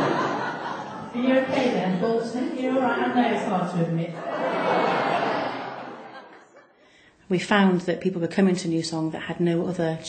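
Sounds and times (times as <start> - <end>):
crowd laughing: 0.0 - 1.8, 4.2 - 6.8.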